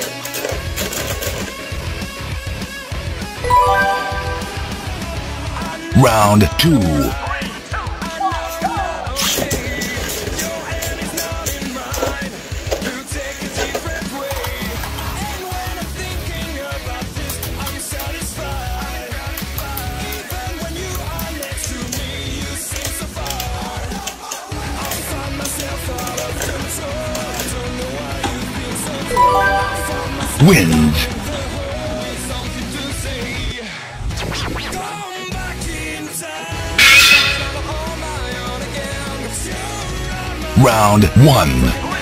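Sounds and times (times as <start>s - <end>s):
background music: 3.4s - 7.3s, 29.0s - 31.4s, 36.7s - 42.0s.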